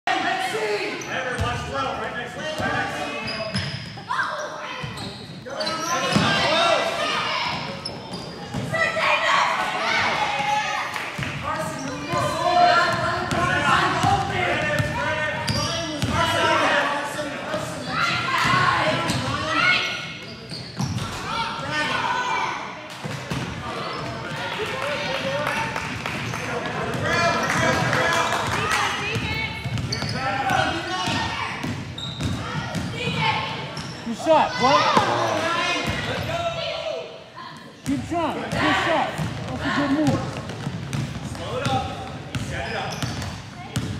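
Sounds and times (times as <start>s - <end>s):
basketball bouncing on wooden floor: 39.2s - 43.9s.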